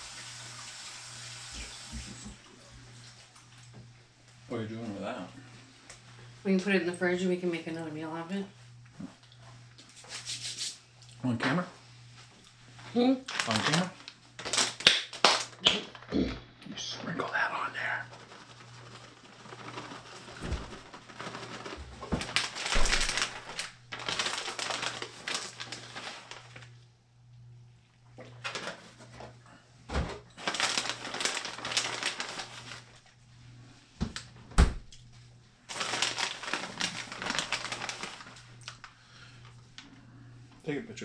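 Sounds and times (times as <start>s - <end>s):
plastic bag crinkling: 13.2s - 16.1s, 17.3s - 26.8s, 28.4s - 29.0s, 30.4s - 33.1s, 35.7s - 39.8s.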